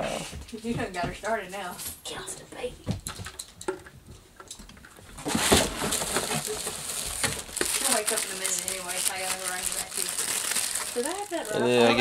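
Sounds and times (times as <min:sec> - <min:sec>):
plastic wrap crinkling: 0:05.2 - 0:12.0.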